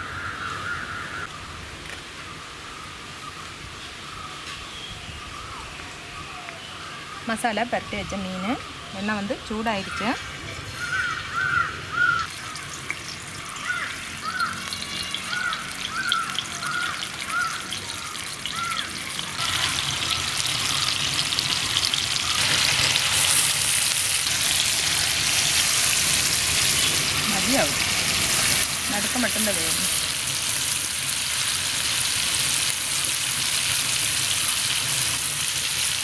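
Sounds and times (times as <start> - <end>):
bird calling: 4.1 - 22.5
fish sizzling in hot oil: 8.2 - 36.0.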